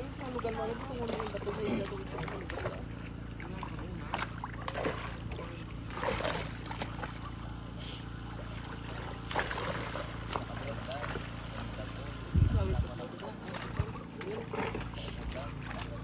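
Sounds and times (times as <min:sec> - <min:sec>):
fish splashing in water: 0:00.0 - 0:12.3
low motor hum: 0:00.0 - 0:16.0.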